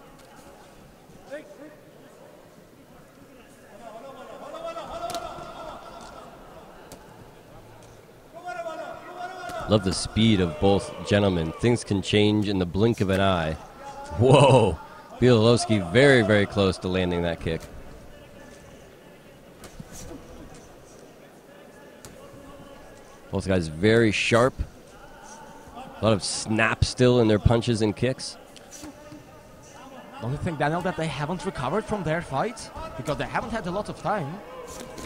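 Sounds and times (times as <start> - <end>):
voices calling out: 14.0 - 16.4.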